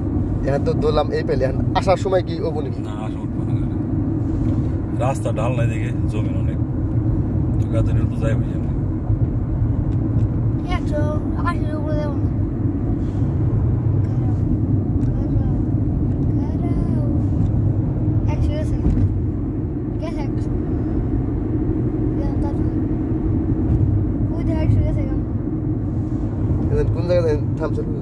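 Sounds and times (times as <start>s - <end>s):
car interior rumble: 0.0s - 28.0s.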